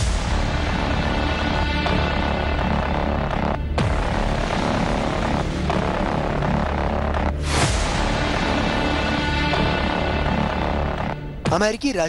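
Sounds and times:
low drone: 0.0s - 11.5s.

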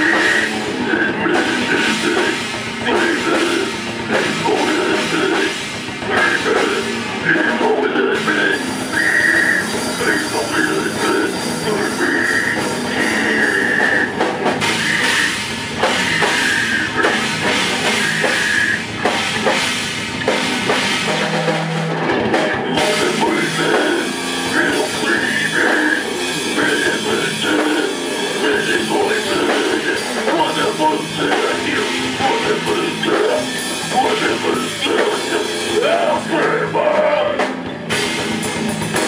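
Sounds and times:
distorted guitars: 0.0s - 39.0s
fast drum kit: 0.0s - 39.0s.

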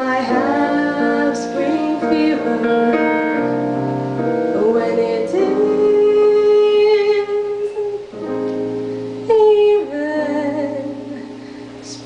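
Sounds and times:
keyboard accompaniment: 0.0s - 12.0s
woman singing jazz ballad: 0.0s - 12.0s.

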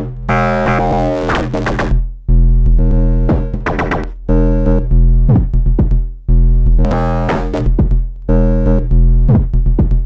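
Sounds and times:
deep synth drum notes: 0.0s - 10.0s.

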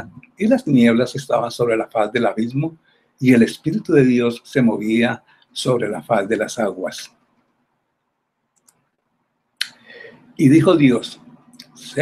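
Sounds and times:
man's voice: 0.0s - 7.1s, 10.4s - 12.0s.

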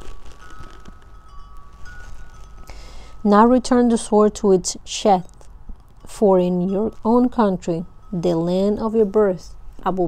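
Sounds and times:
wind chime ringing: 0.3s - 4.3s, 6.0s - 9.6s.

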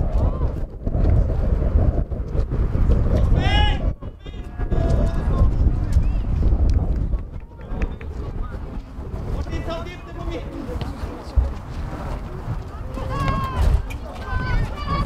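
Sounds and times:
wind rumble on microphone: 0.0s - 15.0s
voices shouting and calling out: 3.2s - 6.4s, 7.1s - 15.0s.

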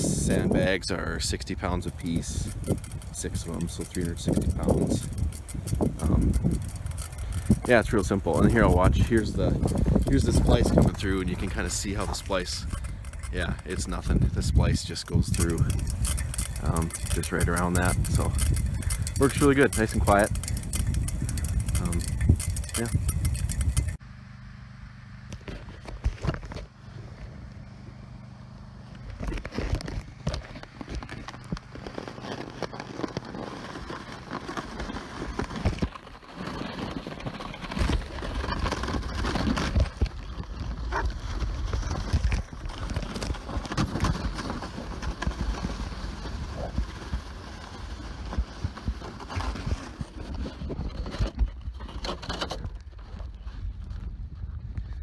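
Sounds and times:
sled scraping over snow: 0.0s - 24.0s, 29.0s - 55.0s.

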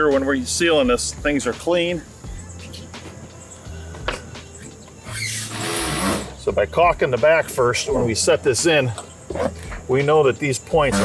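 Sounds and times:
metal sliding over metal: 5.1s - 6.4s.

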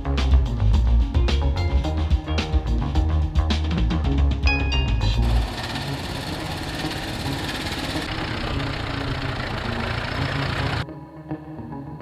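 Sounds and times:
antique vehicle engine running: 5.0s - 10.8s
single-cylinder engine chugging: 5.2s - 10.8s.

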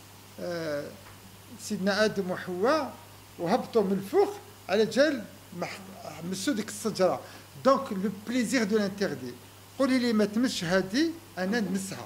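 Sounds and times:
man talking: 0.4s - 12.0s.

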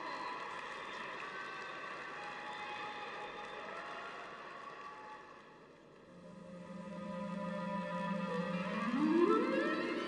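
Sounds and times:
reverberant arena crowd hum: 0.0s - 10.0s.

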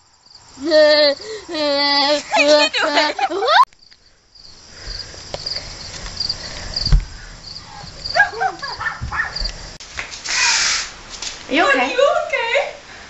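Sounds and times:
crickets chirping: 0.0s - 13.0s
dull thumps: 4.8s - 10.1s.

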